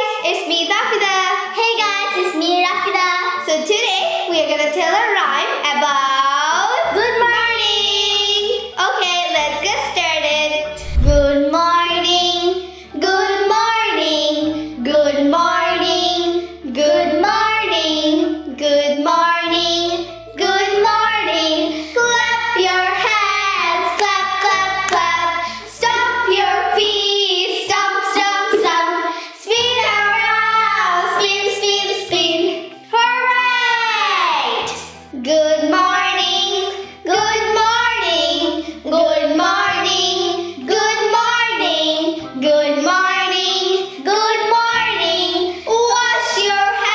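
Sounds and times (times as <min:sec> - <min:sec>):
musical backing track with bass: 0:07.0 - 0:46.9.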